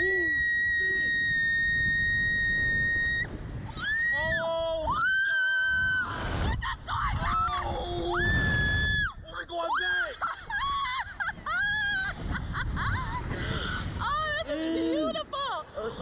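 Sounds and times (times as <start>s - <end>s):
riders screaming: 0.0s - 12.1s
wind buffeting microphone: 0.0s - 16.0s.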